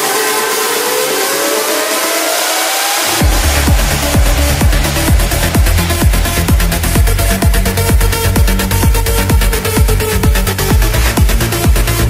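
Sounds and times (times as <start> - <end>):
rising synth sweep: 1.3 - 12.0.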